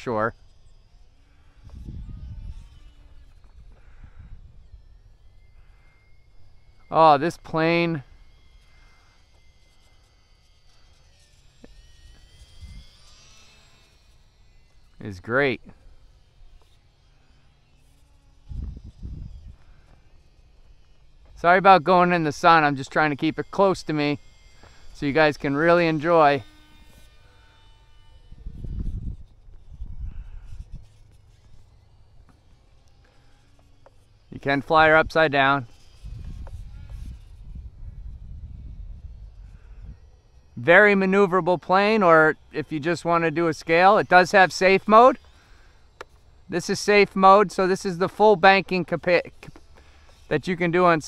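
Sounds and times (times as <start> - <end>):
distant electric model plane whine: 0.0 - 51.0
faint outdoor background: 0.0 - 51.0.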